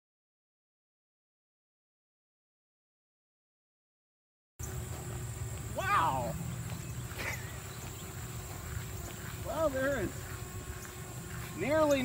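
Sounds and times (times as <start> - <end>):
man's wordless exclamations: 5.8 - 6.4.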